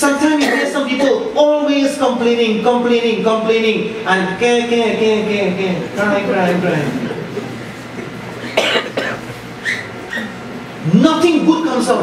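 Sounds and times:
person coughing: 0.3s - 1.2s, 8.4s - 9.4s.

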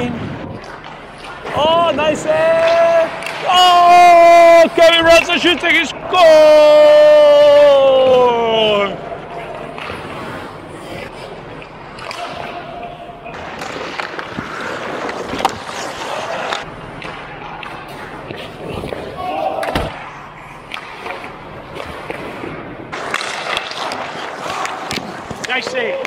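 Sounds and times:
hockey sticks and puck hits: 0.0s - 26.0s
skate blades scraping ice: 9.4s - 12.6s, 13.4s - 16.7s, 20.9s - 26.0s.

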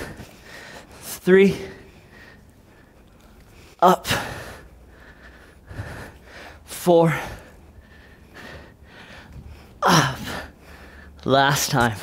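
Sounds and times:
person breathing out hard: 0.0s - 11.2s.

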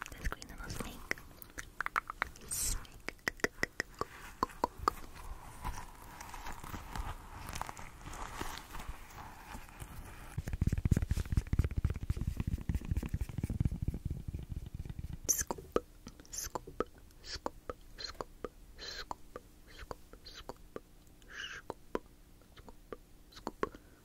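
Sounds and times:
spoon scratching microphone cover: 9.2s - 15.6s
whispered breaths: 21.2s - 21.7s.

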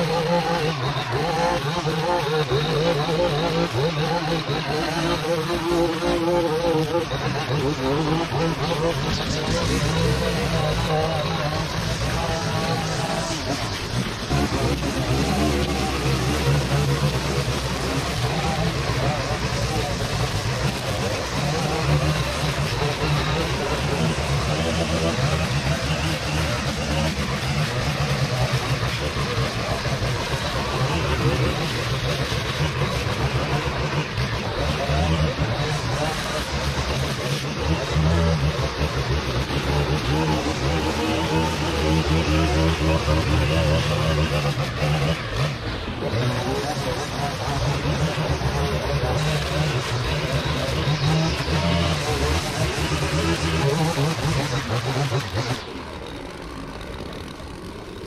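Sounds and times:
gas string trimmers running: 0.0s - 58.0s.

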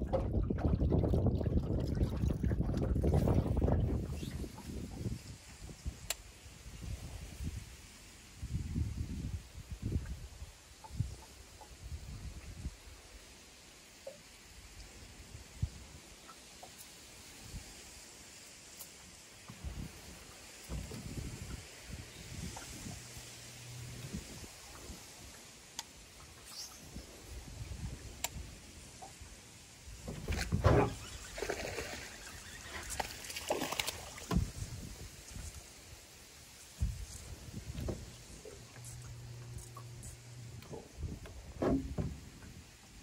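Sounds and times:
water splashing: 0.0s - 6.4s, 19.0s - 43.0s.

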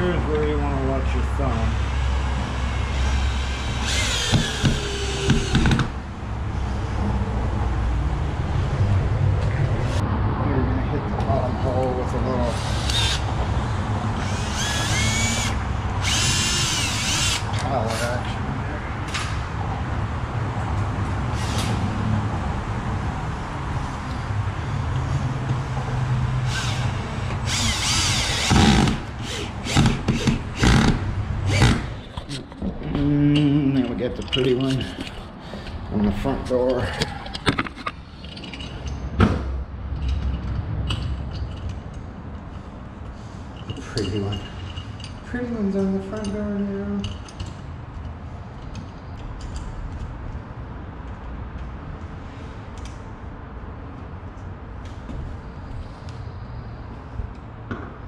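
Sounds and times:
cordless drill drilling into wood: 1.8s - 5.9s, 12.5s - 13.2s, 14.2s - 17.5s, 26.5s - 31.9s
sharp knocks: 4.2s - 6.0s.

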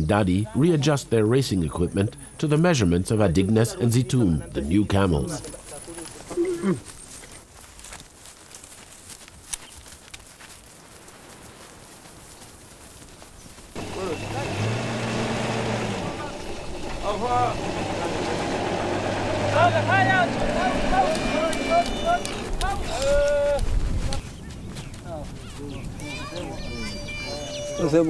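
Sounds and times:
voices calling out: 0.0s - 7.4s, 13.8s - 24.4s, 25.0s - 28.0s.

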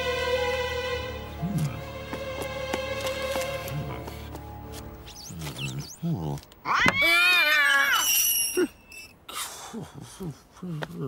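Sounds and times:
cat yowling: 6.6s - 8.0s.

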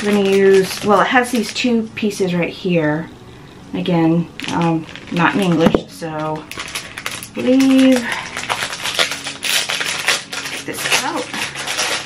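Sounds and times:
packaging crinkling: 0.0s - 1.7s, 4.3s - 12.0s.

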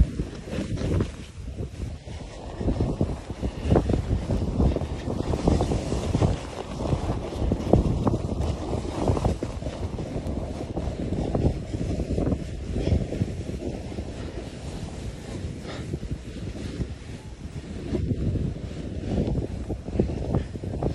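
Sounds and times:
skis rushing through snow: 0.0s - 20.9s
wind buffeting microphone: 0.0s - 20.9s.

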